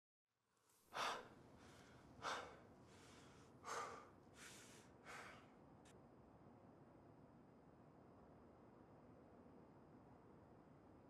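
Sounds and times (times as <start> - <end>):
man breathing hard: 0.9 - 5.6.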